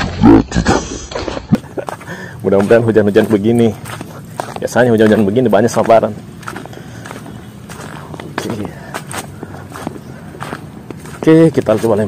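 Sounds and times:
outdoor background noise: 0:00.0 - 0:12.0
footsteps crunching on creek bank: 0:01.2 - 0:12.0.

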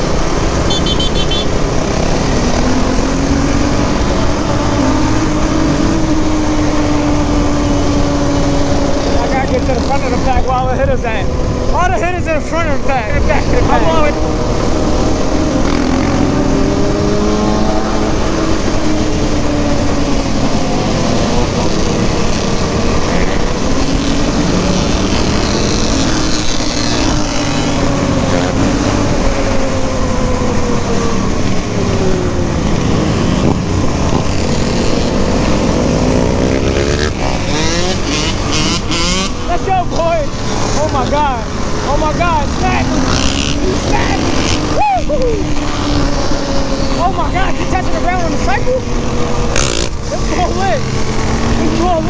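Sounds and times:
quad engine revving: 0:00.0 - 0:10.5, 0:11.1 - 0:52.0
dirt bike engines revving: 0:00.0 - 0:52.0
wind noise on microphone: 0:21.2 - 0:39.4.

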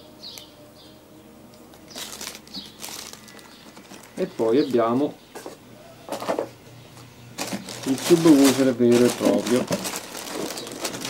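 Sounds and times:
plastic packaging crinkling: 0:01.8 - 0:05.0, 0:07.0 - 0:11.0.

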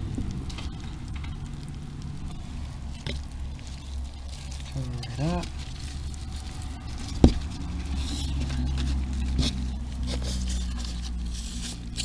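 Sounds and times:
hands crunching damp shredded paper: 0:00.0 - 0:12.0
low hum: 0:00.0 - 0:12.0.

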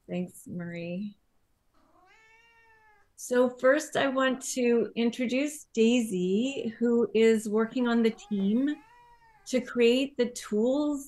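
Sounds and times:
faint high-pitched animal call: 0:01.8 - 0:03.2, 0:08.1 - 0:09.6.

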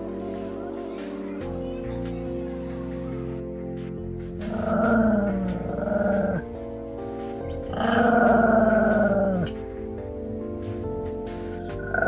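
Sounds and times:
background music: 0:00.0 - 0:12.0
puppy growling: 0:04.4 - 0:06.6, 0:07.5 - 0:09.9, 0:11.6 - 0:12.0.

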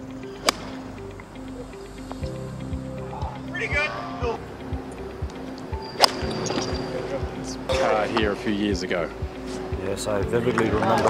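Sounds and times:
background music: 0:00.0 - 0:11.0
golf club striking ball: 0:00.4 - 0:00.8, 0:05.5 - 0:06.8.

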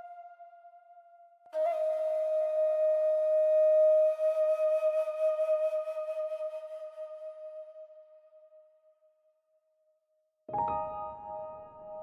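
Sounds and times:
flute holding long note: 0:01.6 - 0:07.8.

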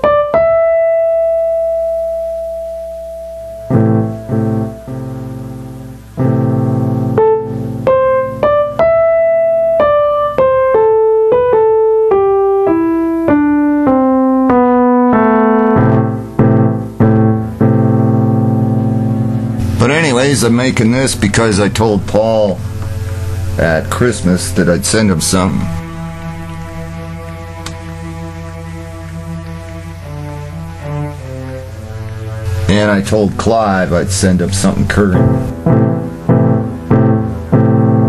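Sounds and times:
digital piano playing: 0:00.0 - 0:38.0.

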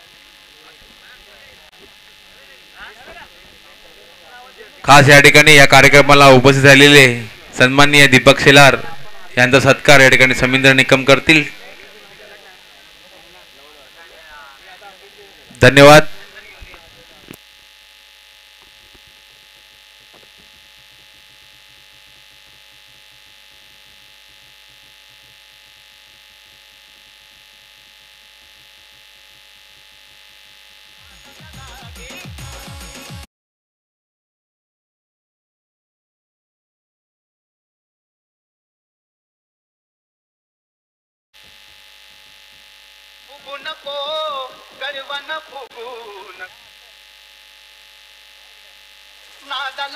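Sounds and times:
electrical hum and buzz: 0:00.0 - 0:33.3, 0:41.4 - 0:49.9.

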